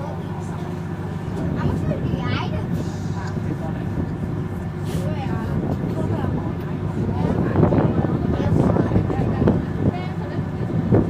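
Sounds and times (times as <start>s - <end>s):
bus engine idling: 0.0s - 11.0s
passengers chattering: 0.0s - 11.0s.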